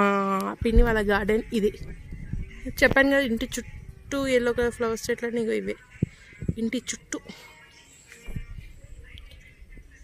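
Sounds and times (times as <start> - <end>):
woman speaking: 0.0 - 2.0, 2.6 - 5.8, 6.5 - 7.5.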